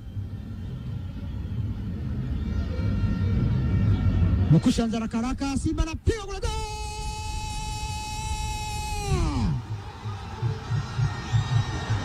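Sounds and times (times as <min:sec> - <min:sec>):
commentator's long goal shout: 0:06.0 - 0:09.6.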